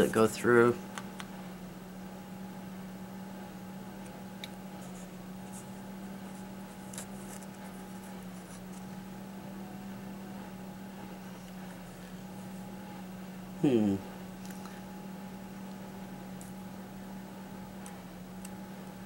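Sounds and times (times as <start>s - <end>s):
steady low hum: 0.0s - 19.0s
hands rubbing foam cups: 4.8s - 8.9s.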